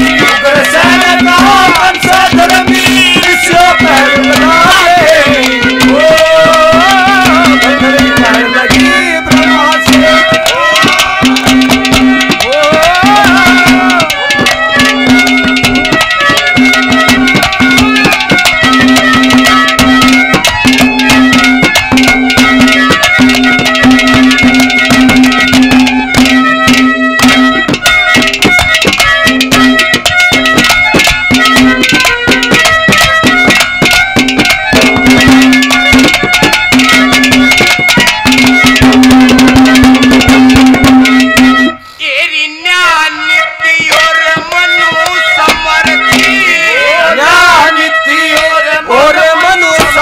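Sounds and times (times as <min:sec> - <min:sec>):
fast hand-drum strokes: 0:00.0 - 0:41.8, 0:43.8 - 0:50.0
lone wavering melody: 0:00.0 - 0:41.9, 0:43.1 - 0:50.0.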